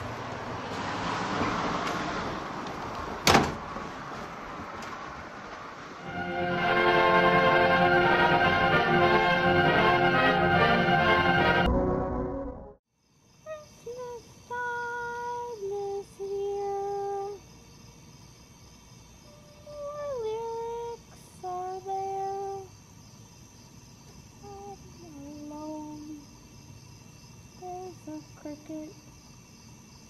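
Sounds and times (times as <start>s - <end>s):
orchestral music: 6.0s - 12.8s
high voice singing wordless tune: 13.5s - 17.4s, 19.6s - 22.7s, 24.4s - 26.2s, 27.6s - 29.0s.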